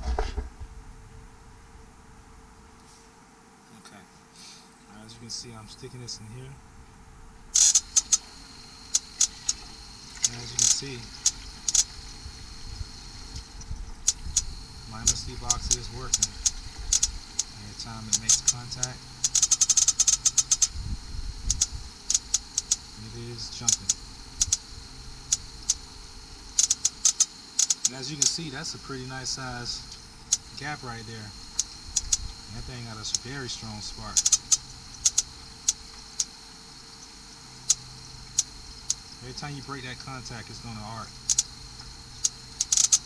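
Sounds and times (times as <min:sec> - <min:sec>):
rapid spark snaps: 0:07.6 - 0:08.3, 0:08.9 - 0:12.0, 0:13.3 - 0:20.8, 0:21.4 - 0:22.8, 0:26.5 - 0:28.4, 0:34.0 - 0:36.3, 0:41.2 - 0:43.0.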